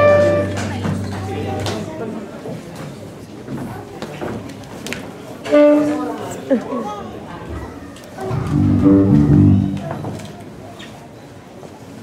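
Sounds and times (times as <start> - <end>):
live band sustained chord: 0.0 - 1.1, 8.2 - 9.9.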